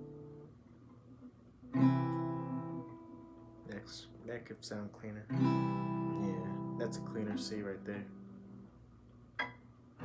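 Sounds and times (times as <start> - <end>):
acoustic guitar chord strummed: 0.0 - 0.6, 1.6 - 4.4, 5.1 - 8.8.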